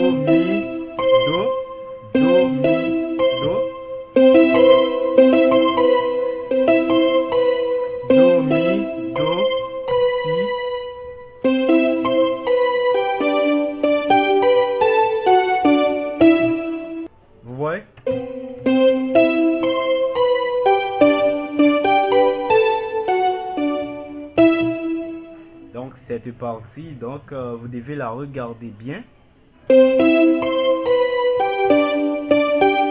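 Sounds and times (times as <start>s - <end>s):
keyboard melodic solo: 0.0s - 17.1s, 18.0s - 25.8s, 29.6s - 32.9s.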